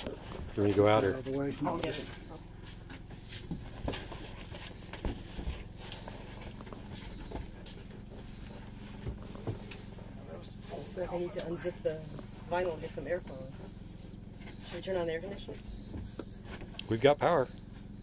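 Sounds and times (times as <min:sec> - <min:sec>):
portable generator humming: 0:00.0 - 0:18.0.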